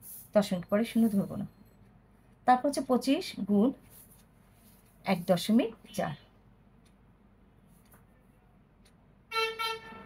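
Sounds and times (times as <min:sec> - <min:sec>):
vehicle horn beeps: 0:09.3 - 0:10.0.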